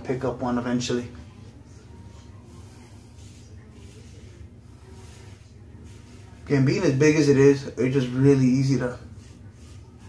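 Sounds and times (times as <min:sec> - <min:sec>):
razor scraping stubble: 0:02.2 - 0:10.0.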